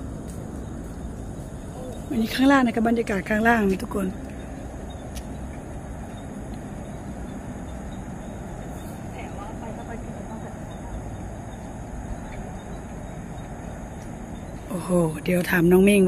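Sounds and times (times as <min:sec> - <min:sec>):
distant road traffic: 0:00.0 - 0:16.0.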